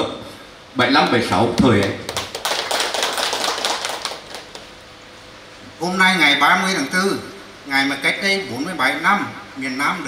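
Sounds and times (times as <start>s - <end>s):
audience applauding: 1.8s - 4.7s.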